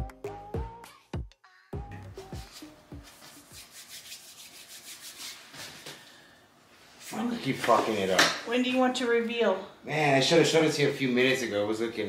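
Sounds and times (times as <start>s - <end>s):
paintbrush scrubbing on canvas: 2.4s - 6.0s.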